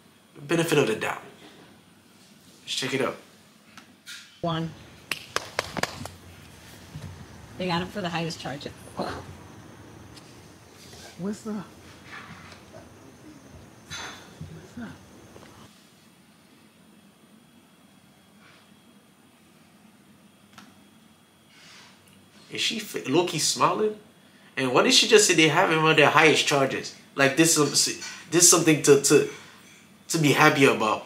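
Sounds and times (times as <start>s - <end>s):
low steady hum and hiss: 0.0s - 31.0s.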